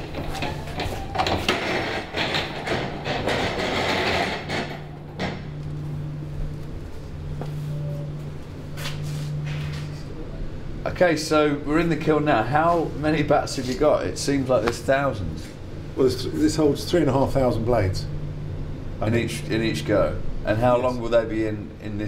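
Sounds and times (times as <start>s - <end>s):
metal doors rattling and scraping: 0.0s - 6.5s
kiln humming: 0.0s - 22.0s.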